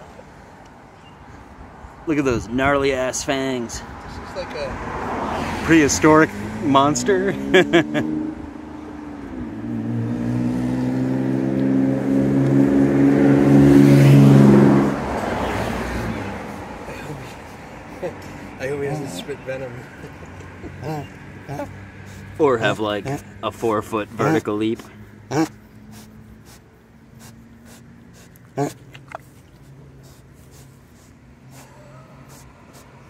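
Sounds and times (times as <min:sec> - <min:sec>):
pig grunting: 0:16.9 - 0:19.9, 0:20.7 - 0:23.4, 0:24.1 - 0:26.6, 0:27.2 - 0:29.4.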